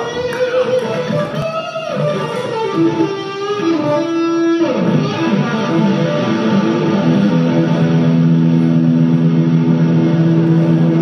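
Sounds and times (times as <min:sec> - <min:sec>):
electric guitar held notes: 0:00.0 - 0:11.0
live band music: 0:00.0 - 0:11.0.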